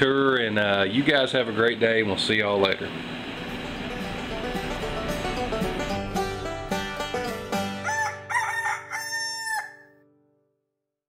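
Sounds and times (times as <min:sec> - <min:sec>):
banjo music: 0:03.4 - 0:09.0
rooster crowing: 0:07.6 - 0:10.0.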